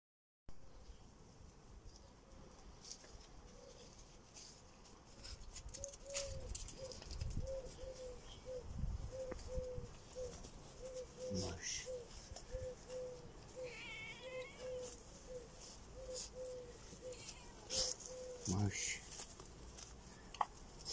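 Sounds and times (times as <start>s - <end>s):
low wind rumble on microphone: 8.6s - 9.9s.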